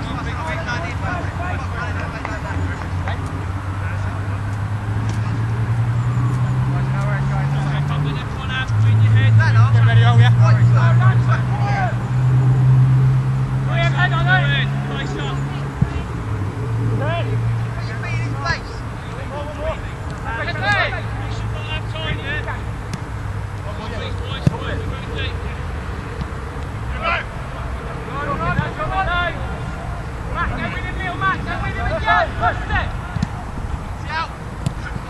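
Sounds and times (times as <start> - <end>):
distant shouting voices: 0.0 - 35.0
vehicle engine hum: 0.0 - 35.0.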